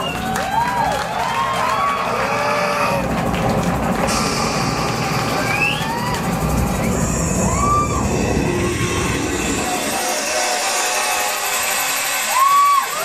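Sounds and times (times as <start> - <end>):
crowd cheering and whooping: 0.0 - 13.0.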